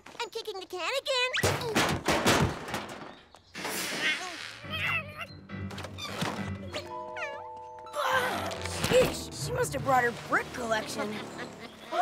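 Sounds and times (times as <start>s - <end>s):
metal trash can clattering crash: 1.5s - 3.1s.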